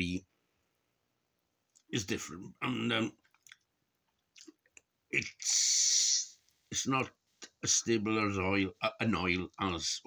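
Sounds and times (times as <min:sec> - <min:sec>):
mouth clicks and lip smacks: 0:03.2 - 0:05.5
man saying um: 0:05.2 - 0:07.1.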